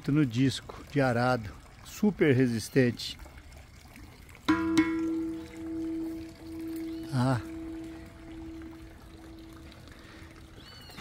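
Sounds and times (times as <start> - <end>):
metal disc struck ringing: 4.5 - 9.8.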